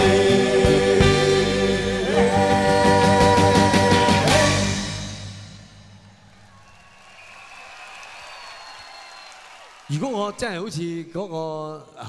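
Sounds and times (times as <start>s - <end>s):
band chord ringing out: 0.0s - 6.3s
concert crowd noise: 5.7s - 10.7s
applause: 6.6s - 10.7s.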